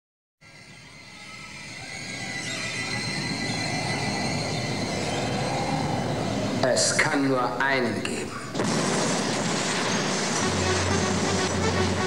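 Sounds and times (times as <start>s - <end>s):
noisy synthesizer drone: 8.6s - 12.0s.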